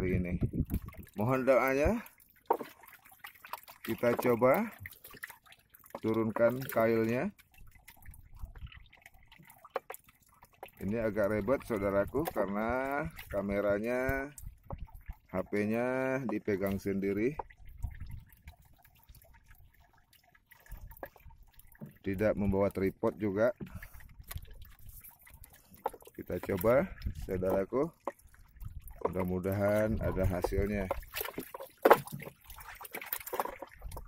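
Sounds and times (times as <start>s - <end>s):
water lapping against boat: 0.0s - 34.0s.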